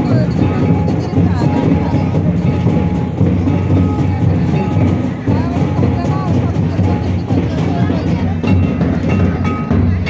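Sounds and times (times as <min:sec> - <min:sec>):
dance drums beating: 0:00.0 - 0:10.0.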